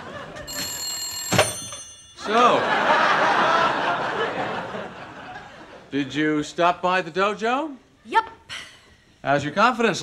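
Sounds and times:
telephone bell ringing: 0:00.1 - 0:03.0.

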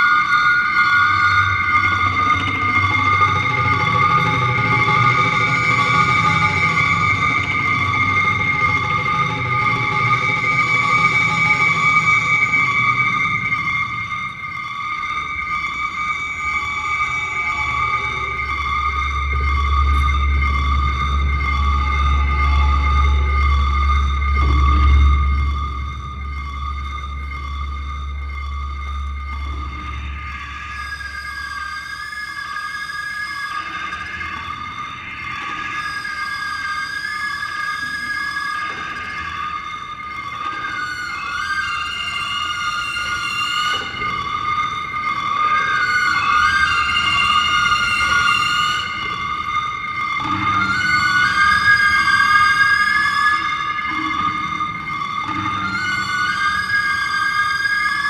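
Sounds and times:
bowed sliding wavering tones: 0:00.0 - 0:58.0
sustained high drone: 0:17.4 - 0:31.2.

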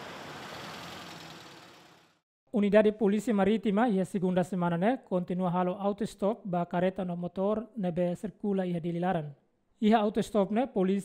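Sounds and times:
cars and motorbikes passing: 0:00.0 - 0:02.2.

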